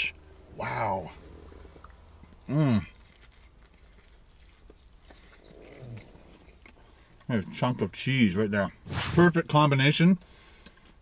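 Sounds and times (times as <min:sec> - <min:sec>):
close-up chewing: 0:01.1 - 0:07.5.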